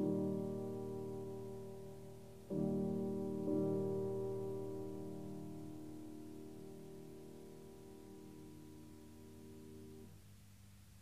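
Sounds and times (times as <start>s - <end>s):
piano chord: 0.0s - 10.1s
faint low hum: 0.0s - 11.0s
tape hiss: 0.0s - 11.0s.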